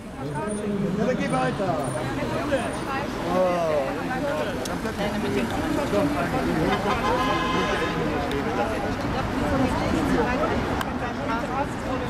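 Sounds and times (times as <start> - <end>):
city traffic passing: 0.0 - 12.0
voices talking: 0.0 - 12.0.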